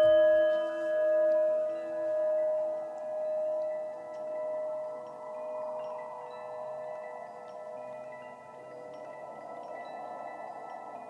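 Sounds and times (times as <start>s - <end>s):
singing bowl ringing: 0.0s - 11.0s.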